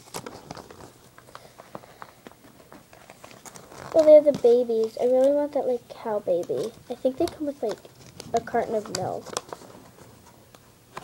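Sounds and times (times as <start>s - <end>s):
paper crinkling and rustling: 0.0s - 11.0s.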